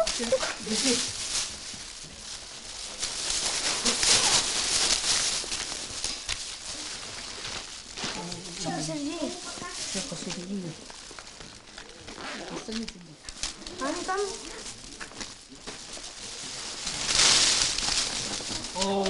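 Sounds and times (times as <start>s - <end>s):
people talking: 0.0s - 1.1s, 8.0s - 10.8s, 18.7s - 19.0s
plastic bag and sweets rustling: 0.0s - 19.0s.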